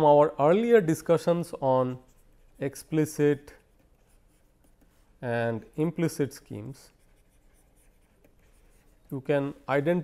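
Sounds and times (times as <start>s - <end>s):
stylus writing on tablet screen: 1.0s - 10.0s.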